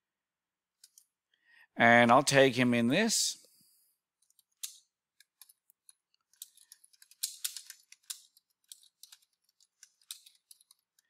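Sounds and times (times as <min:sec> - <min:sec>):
computer keyboard typing: 0:04.3 - 0:11.0.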